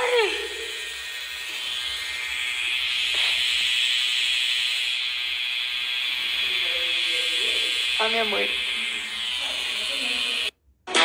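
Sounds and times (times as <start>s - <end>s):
tattoo machine buzzing: 0.0s - 10.5s.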